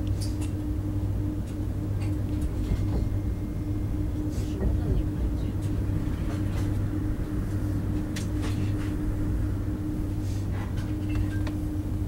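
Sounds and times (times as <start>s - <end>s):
train rumble and hum: 0.0s - 12.0s.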